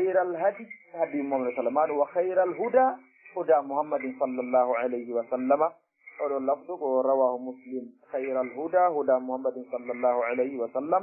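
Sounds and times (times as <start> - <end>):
man speaking in a lecture: 0.0 - 11.0.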